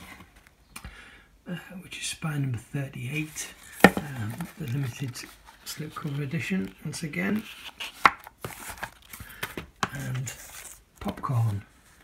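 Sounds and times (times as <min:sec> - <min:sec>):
plastic case clack: 0:03.7 - 0:04.8
plastic cases knocking and clicking: 0:03.8 - 0:04.8.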